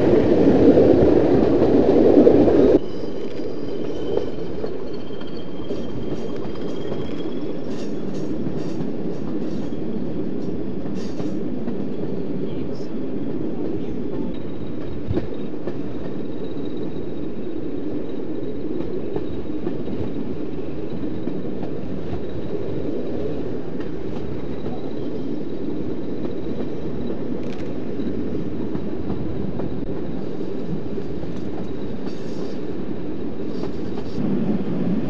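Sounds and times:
train rumbling: 0:00.0 - 0:35.0.

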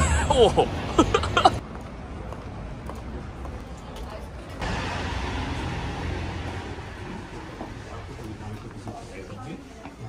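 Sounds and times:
street traffic rushing: 0:00.0 - 0:10.0
voices: 0:03.0 - 0:10.0.

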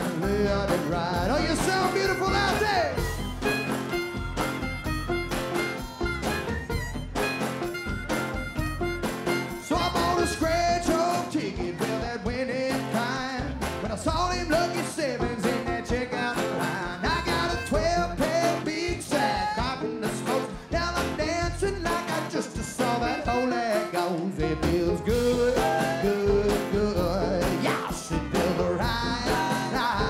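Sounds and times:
acoustic guitar: 0:00.0 - 0:30.0
country-rock band playing: 0:00.0 - 0:30.0
steady drum beat: 0:00.0 - 0:30.0.

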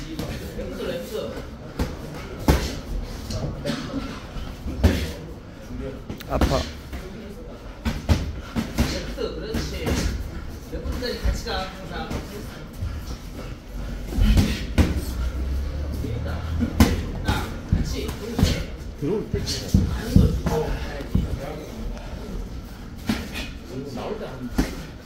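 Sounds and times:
background talk: 0:00.0 - 0:25.0.

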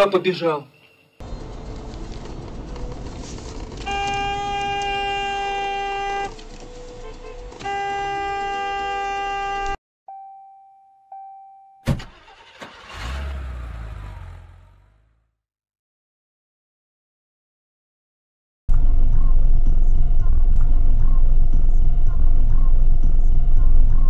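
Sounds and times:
car engine and road noise: 0:01.2 - 0:09.8, 0:11.9 - 0:15.2, 0:18.7 - 0:24.0
car horn blasts: 0:03.8 - 0:06.4, 0:07.0 - 0:09.8.

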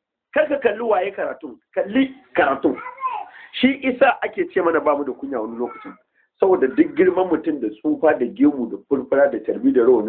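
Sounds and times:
man lecturing: 0:00.4 - 0:10.0.

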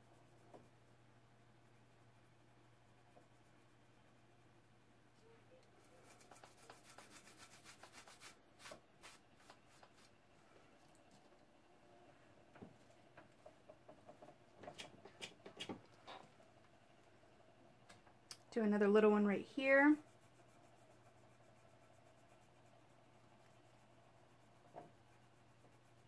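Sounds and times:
cloth rubbing painted surface: 0:05.2 - 0:10.6, 0:19.2 - 0:26.0.

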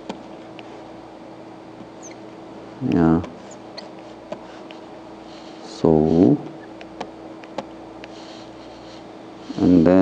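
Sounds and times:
steady low hum: 0:00.0 - 0:10.0
faint high squeak: 0:02.0 - 0:02.2.

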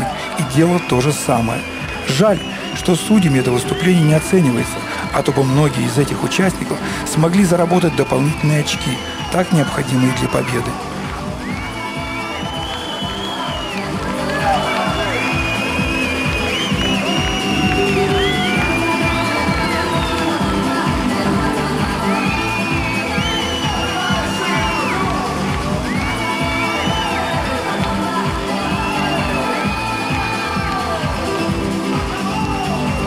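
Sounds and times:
crowd cheering: 0:00.0 - 0:33.0
dance music with steady beat: 0:00.0 - 0:33.0.

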